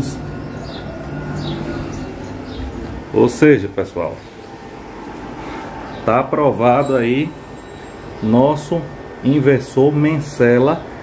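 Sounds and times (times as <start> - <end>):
air conditioner unit humming: 0.0 - 11.0.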